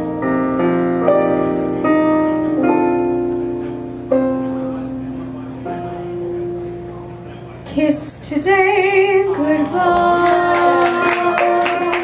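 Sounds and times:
held piano accompaniment: 0.0 - 12.0
soprano singing with vibrato: 7.8 - 12.0.

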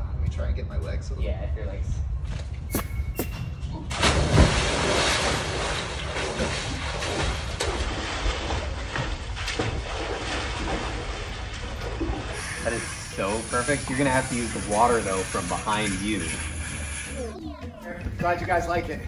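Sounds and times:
person plunging into pool: 3.9 - 12.4
water splashing and churning: 3.9 - 17.4.

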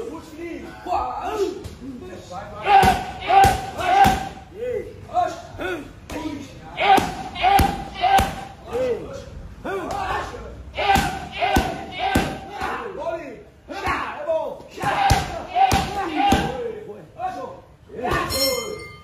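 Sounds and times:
punches and kicks on pads: 10.8 - 12.8.

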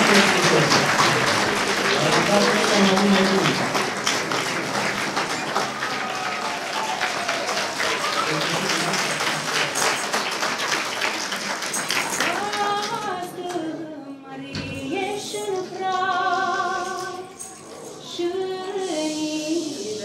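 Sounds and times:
audience applauding: 0.0 - 13.4
voices over clapping: 0.0 - 13.9, 14.6 - 18.2
woman singing: 12.1 - 20.0.

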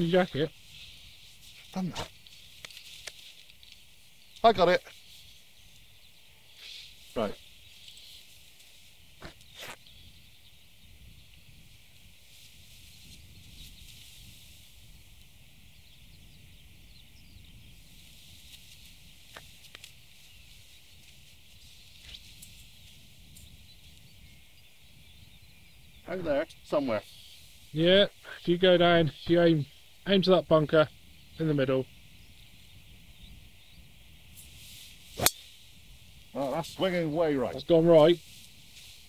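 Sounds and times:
low wind rumble on microphone: 5.1 - 27.8, 28.6 - 39.0.

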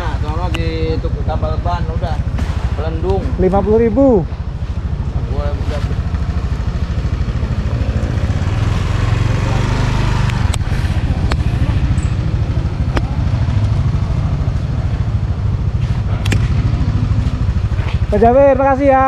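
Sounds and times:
sharp clicks: 16.2 - 16.7.

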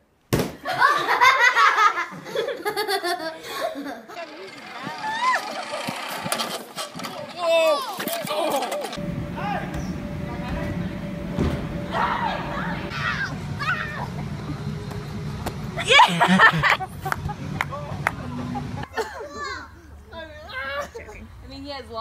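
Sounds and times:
people laughing: 0.6 - 6.1, 8.2 - 9.0, 15.8 - 19.7
excited voices and shrieks: 4.1 - 9.9, 11.9 - 14.4, 15.8 - 16.8.

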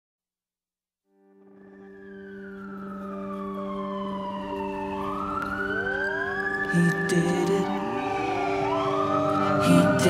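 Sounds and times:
siren wailing: 1.4 - 10.0.

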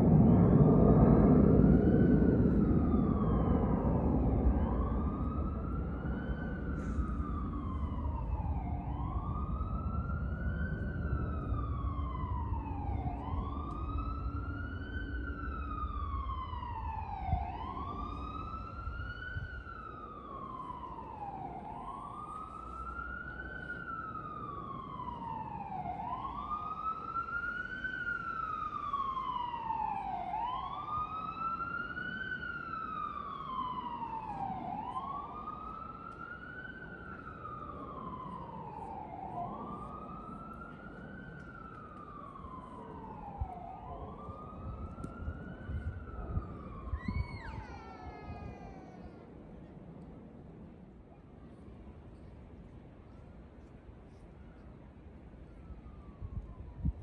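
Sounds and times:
emergency vehicle siren wailing: 0.0 - 57.0.

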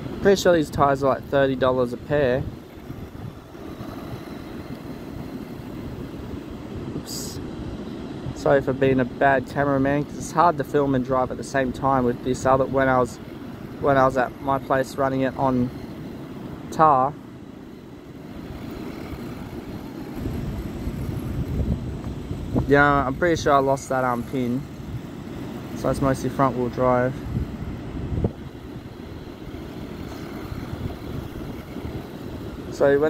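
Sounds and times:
surf washing: 0.0 - 33.0
wind buffeting microphone: 0.0 - 33.0.

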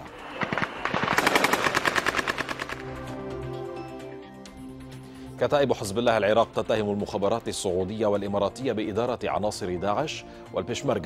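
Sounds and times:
rapid automatic gunfire: 0.2 - 3.1.

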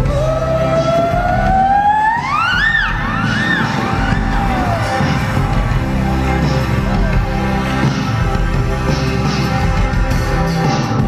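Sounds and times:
live band music: 0.0 - 11.0
low bass: 0.0 - 11.0
sliding lead melody: 0.0 - 11.0.

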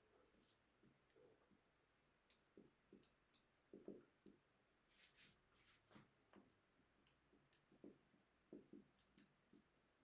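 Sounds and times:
marker squeaking on whiteboard: 7.3 - 9.9.

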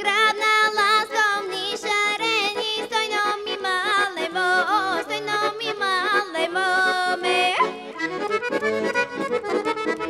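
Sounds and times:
girl singing folk song: 0.0 - 8.0
accordion holding steady tones: 0.0 - 10.0.

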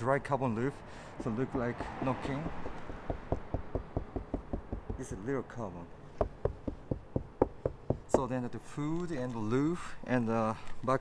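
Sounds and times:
knuckles rapping on roof panel: 1.2 - 5.3, 6.2 - 8.3.

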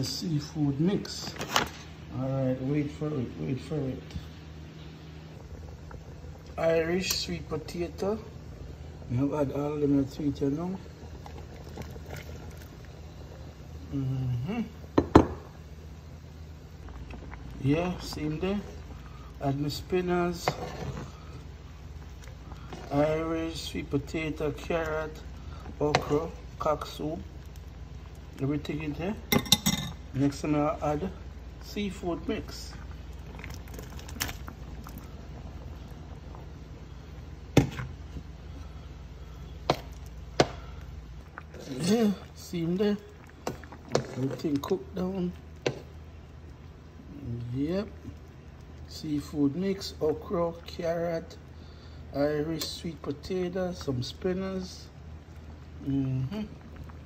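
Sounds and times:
low rumble of simmering pot: 0.0 - 57.0
low steady hum: 0.0 - 57.0.

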